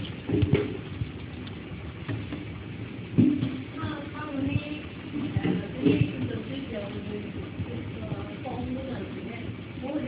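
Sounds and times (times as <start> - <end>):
filling machine pump running: 0.0 - 10.0.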